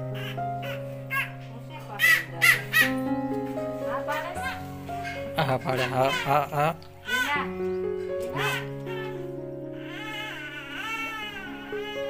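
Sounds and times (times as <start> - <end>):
background music with held notes: 0.0 - 12.0
crow cawing: 0.1 - 1.4, 2.0 - 3.0.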